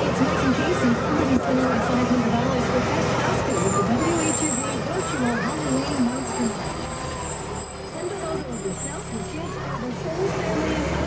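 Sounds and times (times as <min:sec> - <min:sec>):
diesel fire engine running: 0:00.0 - 0:11.0.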